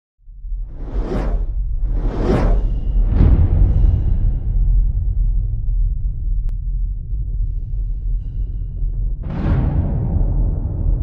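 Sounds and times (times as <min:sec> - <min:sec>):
deep bass rumble: 0:00.2 - 0:11.0
whoosh: 0:00.5 - 0:05.8.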